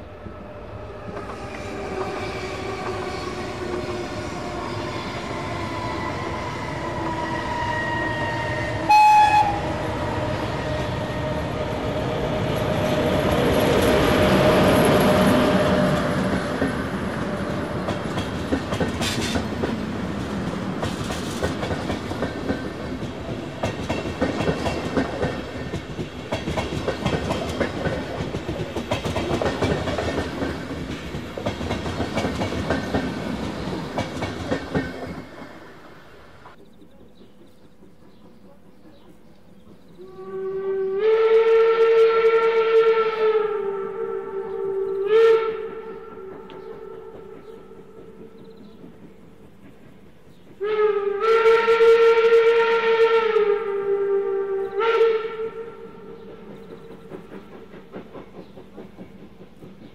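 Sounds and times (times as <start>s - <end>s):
electric locomotive whine: 0.0s - 36.7s, 39.6s - 59.9s
train horn blast: 7.2s - 11.8s, 40.0s - 48.0s, 50.6s - 56.4s
train wheels clacking over rail joints: 12.6s - 35.6s, 46.3s - 50.6s, 56.0s - 59.9s.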